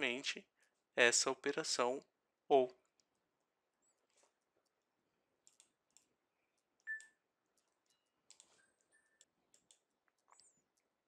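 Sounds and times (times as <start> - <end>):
faint clicks: 5.4 - 6.1, 6.8 - 10.6.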